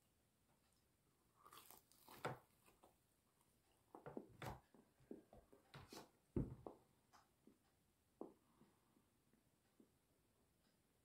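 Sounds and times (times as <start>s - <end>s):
person chewing food: 1.2s - 3.0s.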